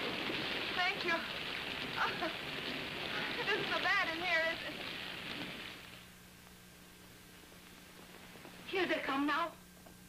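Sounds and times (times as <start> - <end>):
steady rain falling: 0.0 - 9.4.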